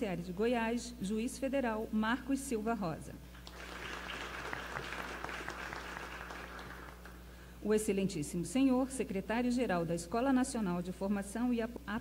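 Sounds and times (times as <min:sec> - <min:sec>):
audience applauding: 0:03.4 - 0:07.2.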